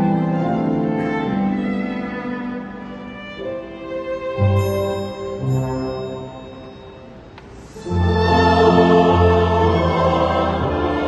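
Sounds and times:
violins playing held notes: 0.0 - 11.0.

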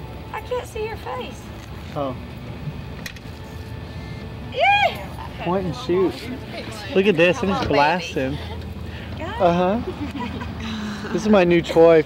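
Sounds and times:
low street rumble: 0.0 - 12.0.

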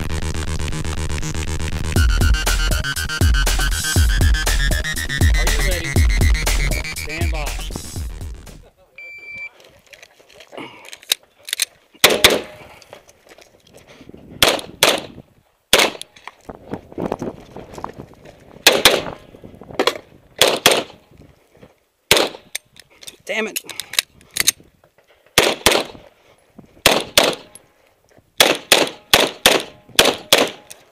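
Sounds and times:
electronic music: 0.0 - 8.7
shot timer start beep: 9.0 - 9.5
pistol shots: 12.0 - 12.6, 14.4 - 16.1, 18.6 - 19.2, 20.4 - 21.0, 22.1 - 22.5, 25.4 - 26.0, 26.8 - 27.6, 28.4 - 30.7.

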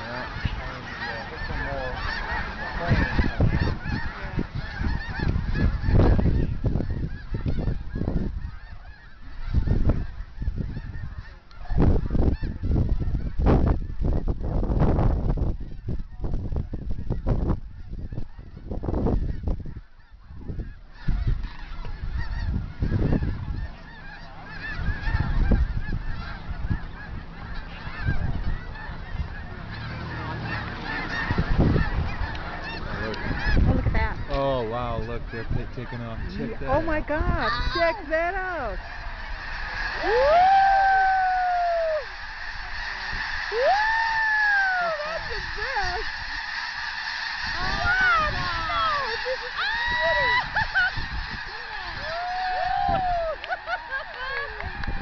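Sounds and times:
geese honking: 0.0 - 55.0
wind buffeting microphone: 0.0 - 55.0.

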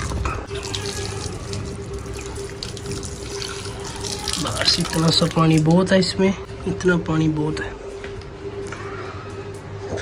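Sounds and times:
water spilling onto concrete: 0.0 - 5.7
water running from a tap: 0.0 - 5.8.

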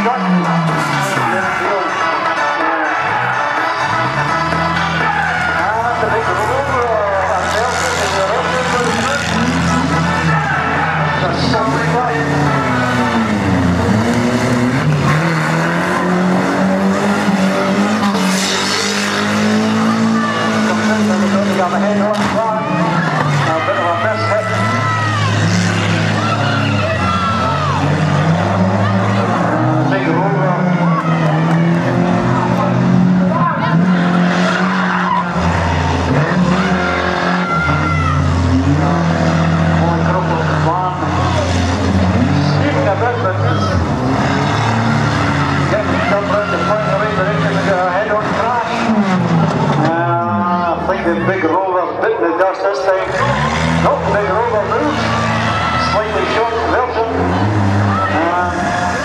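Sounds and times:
race car engines revving: 0.0 - 59.0
tyres skidding: 0.0 - 59.0.

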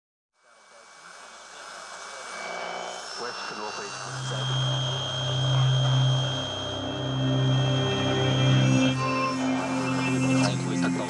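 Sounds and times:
deep steady drone: 0.6 - 11.0.

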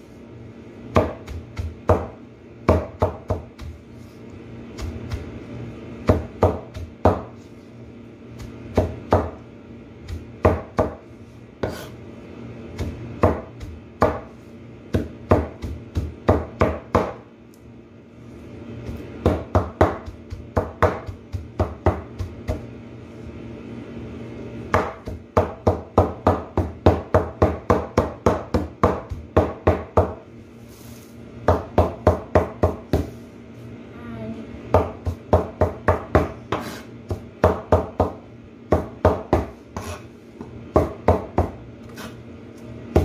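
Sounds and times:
cleaver chopping leaves on board: 0.9 - 3.8, 4.7 - 5.3, 6.0 - 7.3, 8.3 - 9.4, 10.0 - 11.0, 12.7 - 14.3, 14.9 - 17.2, 18.9 - 22.7, 24.7 - 30.2, 34.7 - 40.1.

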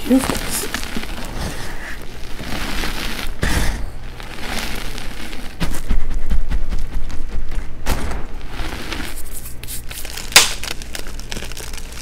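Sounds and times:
chalk crunching and crackling: 0.0 - 12.0.

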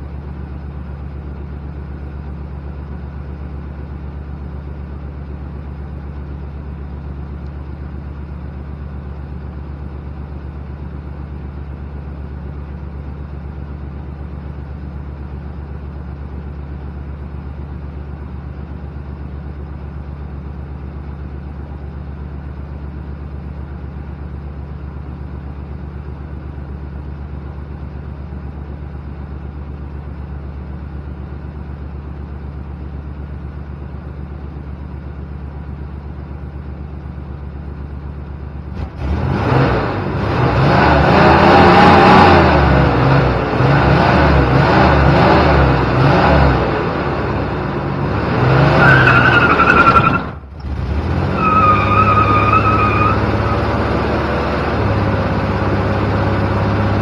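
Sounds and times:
truck engine idling and revving: 0.0 - 57.0
tires spinning and squealing: 48.1 - 54.2.

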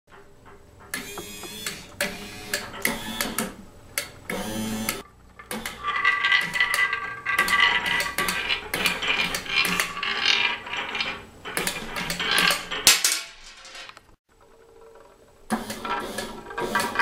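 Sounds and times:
balls rolling on wire tracks: 0.1 - 17.0.

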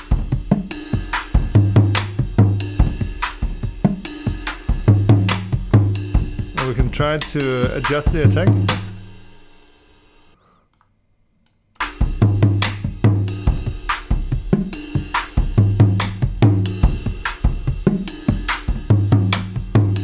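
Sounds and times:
drum kit groove: 0.0 - 9.8, 11.8 - 20.0.

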